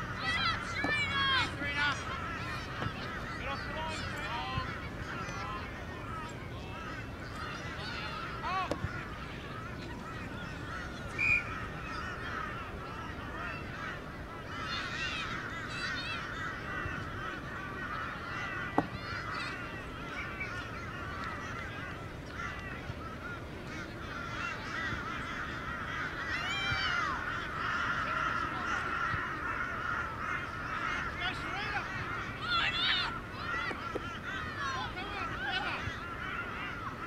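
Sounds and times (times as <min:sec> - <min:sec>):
many birds calling: 0:00.0 - 0:37.0.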